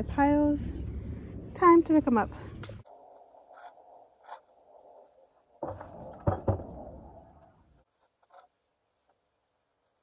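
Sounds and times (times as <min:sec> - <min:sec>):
sharp knocks: 0:05.6 - 0:06.9.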